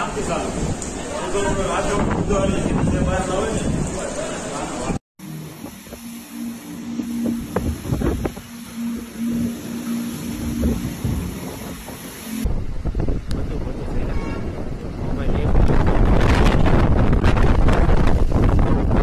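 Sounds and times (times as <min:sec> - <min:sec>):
wind buffeting microphone: 0:00.2 - 0:04.1, 0:10.4 - 0:19.0
low droning tone: 0:05.2 - 0:13.4.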